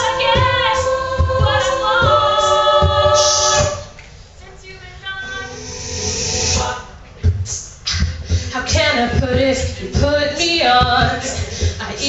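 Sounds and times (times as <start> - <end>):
low pulsing beat: 0.0 - 3.9, 6.6 - 11.9
female group singing in harmony: 0.0 - 6.9.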